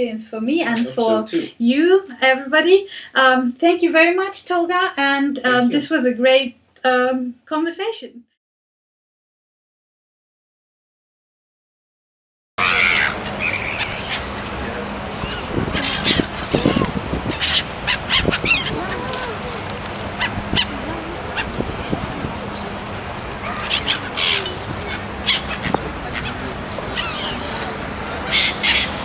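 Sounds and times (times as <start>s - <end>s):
gulls calling: 12.6s - 29.0s
water rushing: 12.6s - 29.0s
wind: 12.6s - 29.0s.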